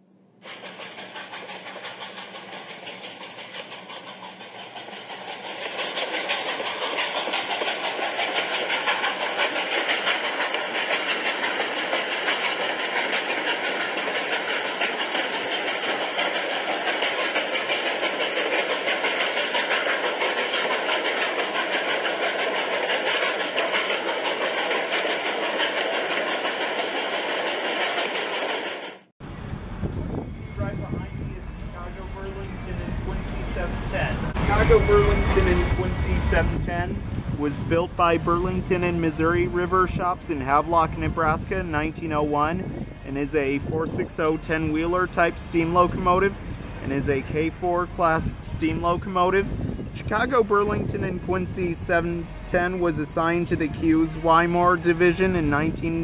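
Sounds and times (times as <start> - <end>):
train rushing noise: 0.4 - 56.0
wind rumbling on microphone: 29.3 - 52.6.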